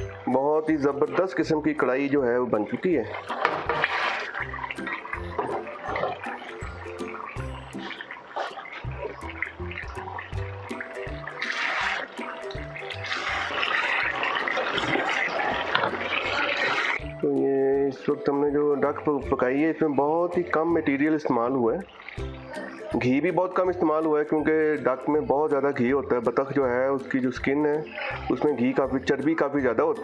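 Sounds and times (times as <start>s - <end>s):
background music with bass line: 0.0s - 8.2s, 8.8s - 30.0s
wooden spoon stirring: 2.5s - 17.3s
curry bubbling and sizzling in pan: 2.8s - 17.3s, 19.4s - 24.4s.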